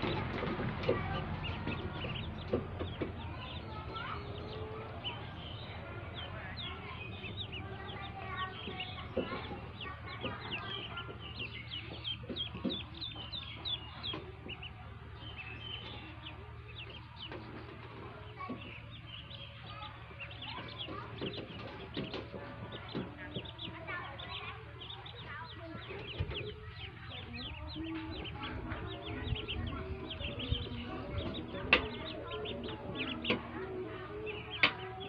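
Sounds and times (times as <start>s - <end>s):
ducklings peeping: 0.0s - 35.0s.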